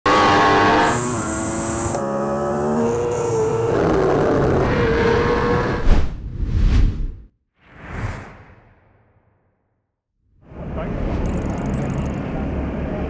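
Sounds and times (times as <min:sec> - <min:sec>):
motorbike engines at high revs: 0:00.1 - 0:05.8.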